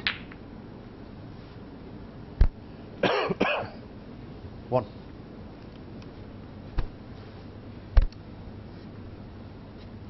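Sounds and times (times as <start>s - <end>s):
snooker ball knock: 0.0s - 0.4s.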